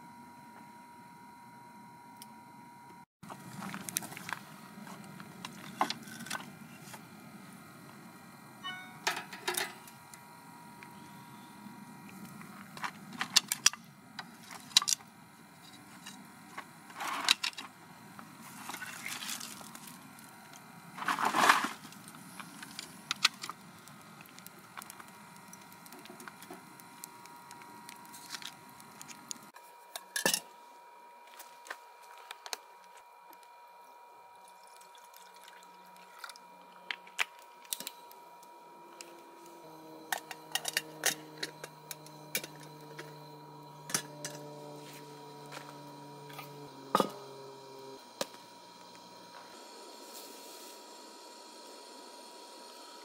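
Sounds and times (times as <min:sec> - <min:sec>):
faint steady hum: 0:00.0 - 0:53.0
wood fire crackling and popping: 0:18.4 - 0:29.6.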